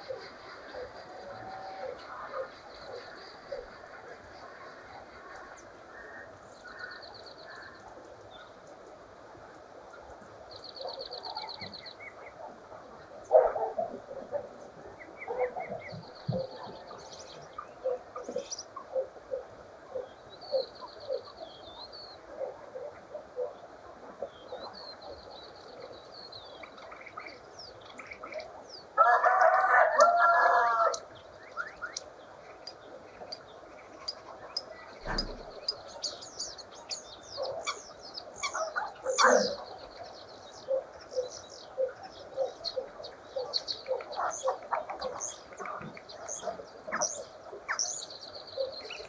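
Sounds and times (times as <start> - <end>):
rooster crowing: 29.0 - 31.0.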